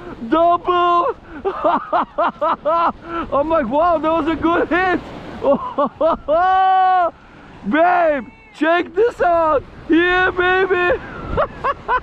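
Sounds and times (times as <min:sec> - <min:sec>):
man laughing excitedly: 0:00.8 - 0:03.4, 0:04.4 - 0:07.1, 0:10.6 - 0:12.0.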